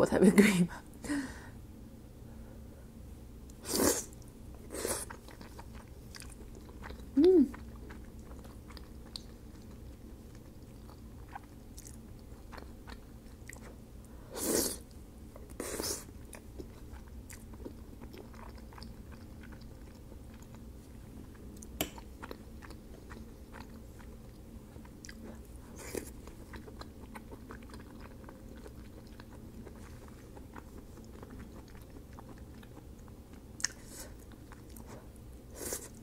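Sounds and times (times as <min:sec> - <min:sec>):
person chewing soft food: 0:03.4 - 0:36.0.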